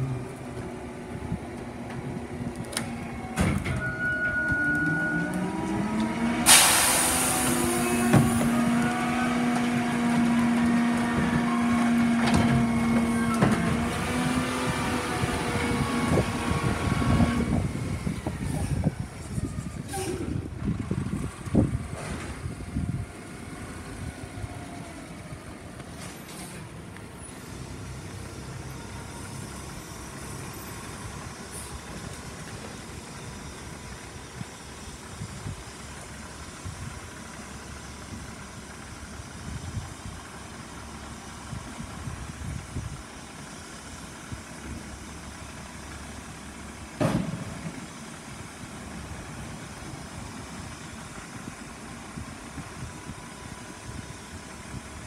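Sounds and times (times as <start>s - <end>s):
diesel truck engine running: 0.0s - 55.0s
hydraulic whine of garbage truck packer: 1.1s - 26.7s.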